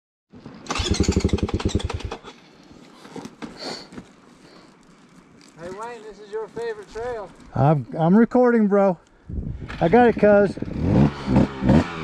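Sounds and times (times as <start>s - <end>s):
off-road vehicle engine running: 0.7s - 2.3s.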